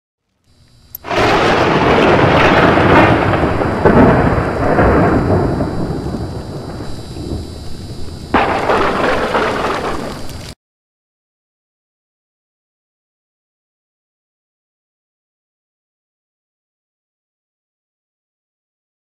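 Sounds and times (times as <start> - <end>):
thunder-like rumble: 1.0 - 10.6
sudden crash: 1.1 - 10.6.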